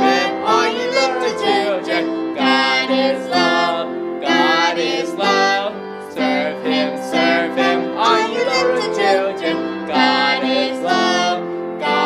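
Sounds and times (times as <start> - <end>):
man and woman singing: 0.0 - 12.0.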